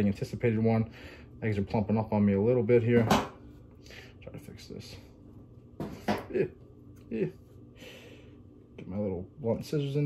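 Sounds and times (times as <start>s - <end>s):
man murmuring: 6.2s - 7.4s.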